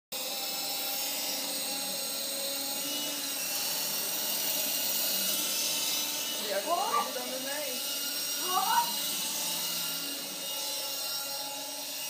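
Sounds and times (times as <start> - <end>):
toy helicopter rotor whine: 0.2 - 12.0.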